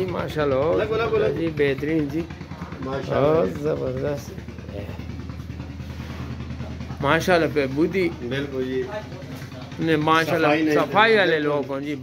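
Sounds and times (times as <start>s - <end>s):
small engine idling: 0.0s - 12.0s.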